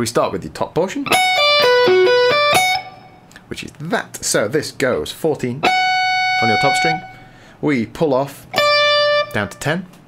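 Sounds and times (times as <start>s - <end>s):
electric guitar arpeggio: 1.0s - 3.2s, 5.6s - 7.3s, 8.6s - 9.4s.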